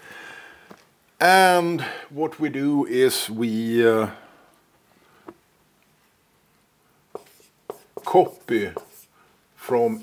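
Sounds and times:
marker scratching on whiteboard: 0:07.1 - 0:09.1.

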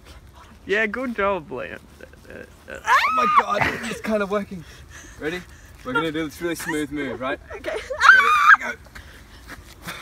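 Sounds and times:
woman shrieking: 0:02.8 - 0:03.6, 0:07.9 - 0:08.6.

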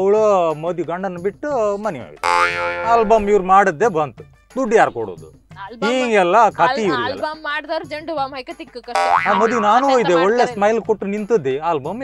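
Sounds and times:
man talking: 0:02.8 - 0:04.0, 0:04.6 - 0:07.2, 0:09.3 - 0:12.0.

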